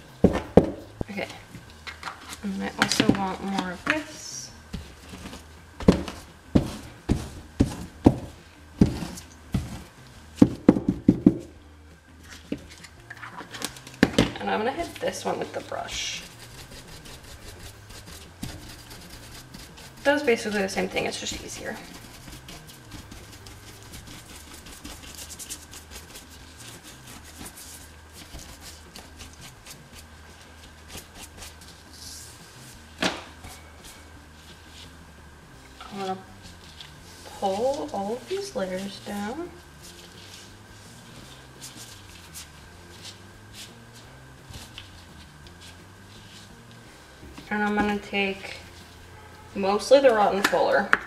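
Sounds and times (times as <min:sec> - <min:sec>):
brush scrubbing fabric: 0:15.5 - 0:32.7, 0:36.5 - 0:46.7.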